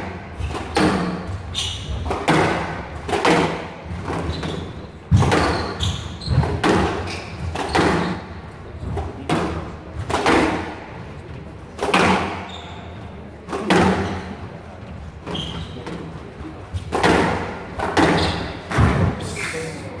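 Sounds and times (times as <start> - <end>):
squash ball struck by rackets: 0.0 - 10.9, 11.8 - 12.5, 13.5 - 14.3, 16.8 - 19.2.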